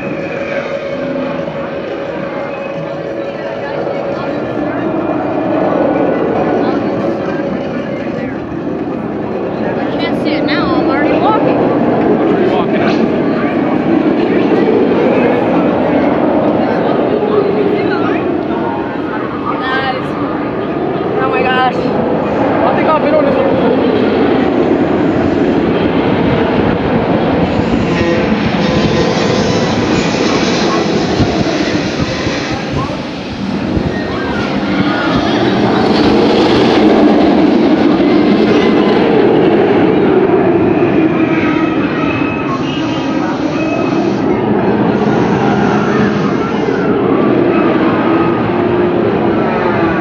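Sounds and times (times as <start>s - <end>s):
roller coaster train rumbling: 0.0s - 50.0s.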